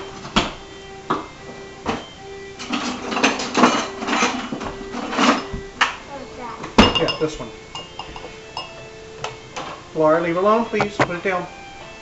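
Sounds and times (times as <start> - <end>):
faint radio music: 0.0 - 12.0
spoon clinking against glass bowl: 6.8 - 8.8.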